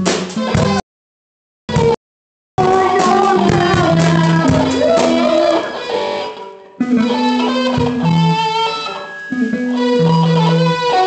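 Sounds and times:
rock band playing live: 0.0s - 0.8s, 1.7s - 2.0s, 2.6s - 11.0s.

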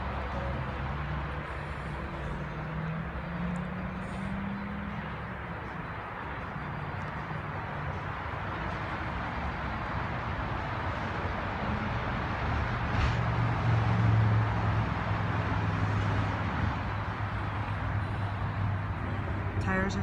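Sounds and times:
road traffic: 0.0s - 20.0s
vehicle engine rumble: 0.0s - 20.0s.

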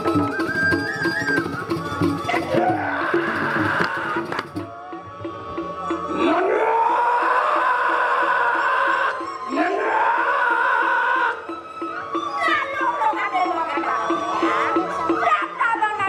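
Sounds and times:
gamelan gong ensemble: 0.0s - 7.0s, 9.1s - 15.8s
high wailing voice: 2.3s - 5.2s, 6.1s - 11.5s.

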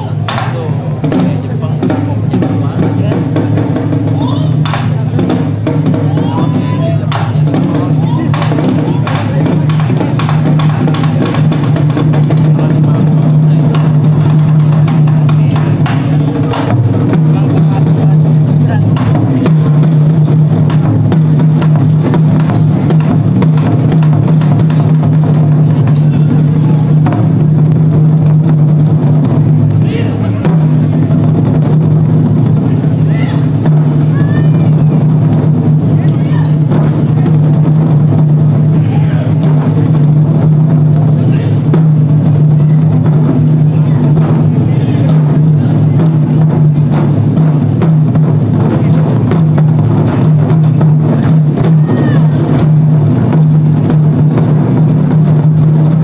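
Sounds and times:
voices calling out: 0.0s - 55.8s
taiko drums playing: 0.0s - 56.0s.

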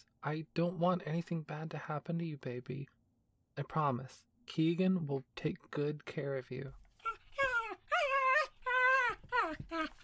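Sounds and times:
dog whining yowls: 7.0s - 10.0s.

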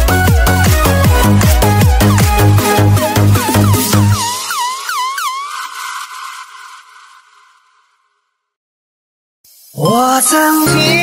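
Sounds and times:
synth effect sweeping: 0.0s - 8.2s
hiss: 9.5s - 10.7s.

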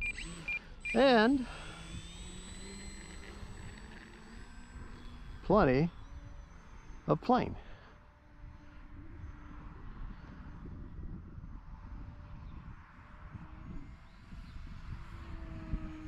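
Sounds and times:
model plane motor humming overhead: 0.0s - 16.0s
wind rumble on microphone: 7.9s - 16.0s.

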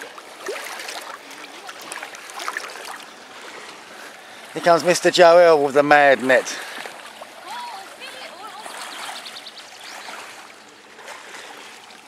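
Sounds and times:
net pushing through water: 0.0s - 3.8s
water sloshing and trickling: 0.0s - 12.0s.

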